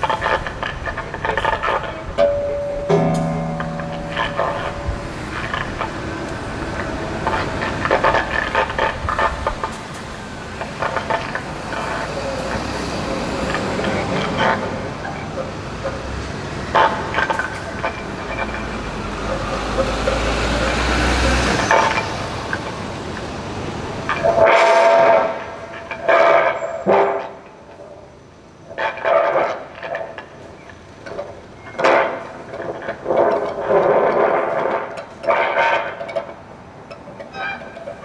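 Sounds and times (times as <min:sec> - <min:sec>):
scratchy bowed and plucked phrases: 0:02.2 - 0:08.8
dense noisy string improvisation: 0:02.9 - 0:17.5.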